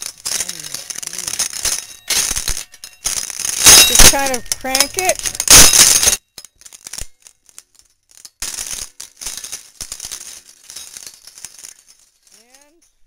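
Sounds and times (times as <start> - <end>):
walnuts cracking in nutcracker: 0.0 - 2.4.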